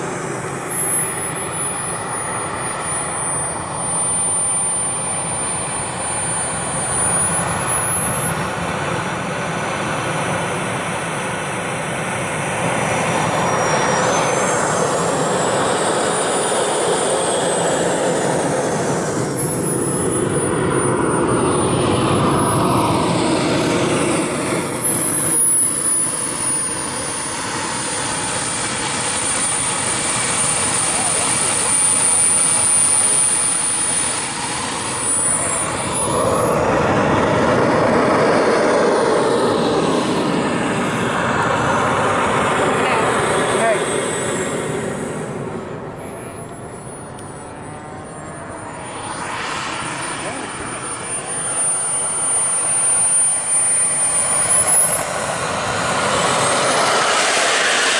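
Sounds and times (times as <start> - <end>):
broad rushing noise: 0.0 - 57.9
ducted fan jet whine: 0.0 - 57.9.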